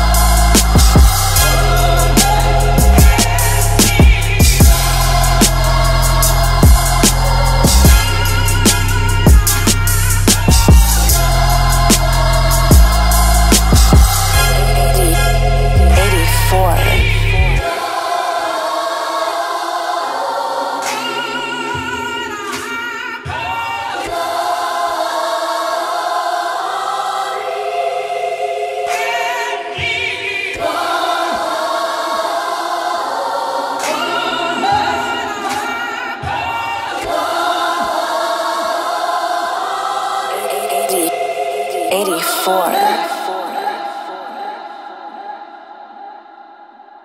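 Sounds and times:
sampled choir singing with vibrato: 0.0 - 47.0.

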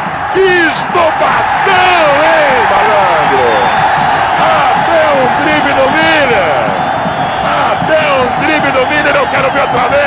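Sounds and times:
crowd roar: 0.0 - 10.0
crowd shouting and chanting: 0.0 - 10.0.

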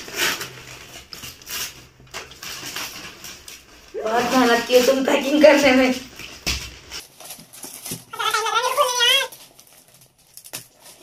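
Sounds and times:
gift-wrap paper crinkling: 0.0 - 11.0.

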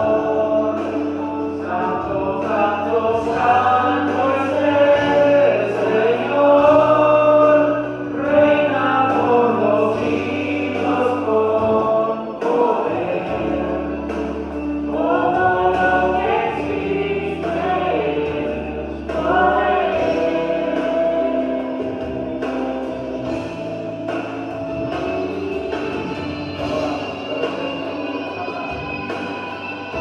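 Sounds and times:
man singing gospel song: 0.0 - 23.4
accompaniment with sustained bass: 0.0 - 30.0.

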